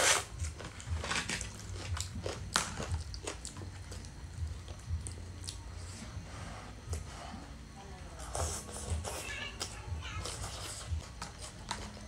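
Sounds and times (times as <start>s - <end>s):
wet chewing: 0.5s - 5.9s.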